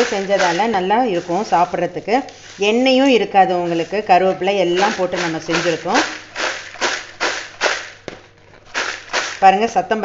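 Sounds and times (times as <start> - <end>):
fried snack rattling in bowl: 0.0 - 1.5, 4.7 - 8.1, 8.7 - 9.8.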